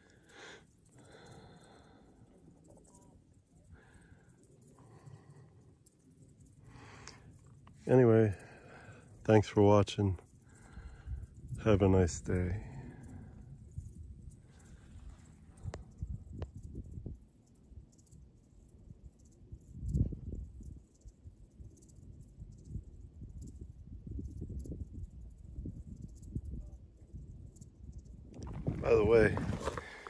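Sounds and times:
wind buffeting microphone: 10.7 - 17.2, 19.6 - 20.9, 22.1 - 30.0.

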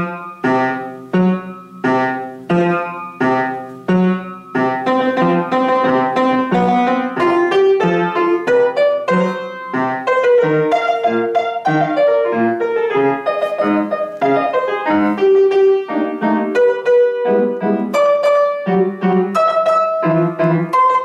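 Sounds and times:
upright piano playing: 0.0 - 21.0.

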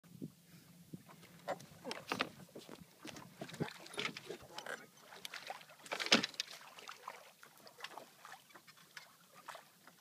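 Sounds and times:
knocks and creaks: 1.0 - 6.6.

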